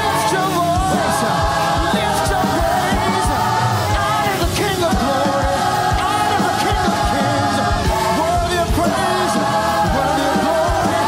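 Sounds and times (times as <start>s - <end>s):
band playing gospel music: 0.0s - 11.0s
choir and lead vocalists singing: 0.0s - 11.0s
steady drum beat: 0.0s - 11.0s.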